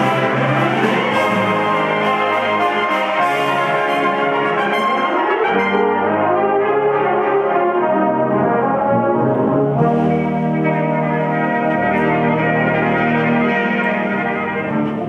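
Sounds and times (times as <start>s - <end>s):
brass band playing chords: 0.0s - 15.0s.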